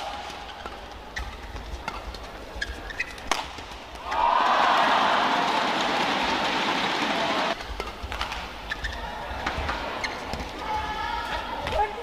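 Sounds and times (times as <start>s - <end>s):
crowd cheering and clapping: 4.0s - 7.6s.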